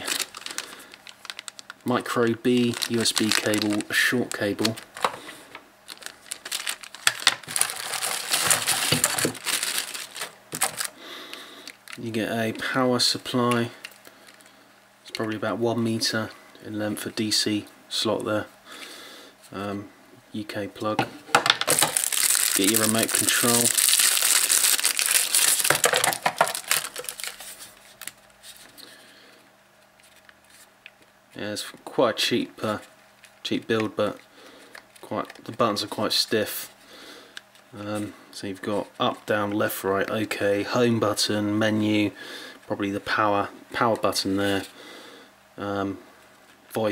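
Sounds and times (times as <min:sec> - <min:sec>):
plastic bag crinkling: 0:00.0 - 0:12.2, 0:21.6 - 0:28.9.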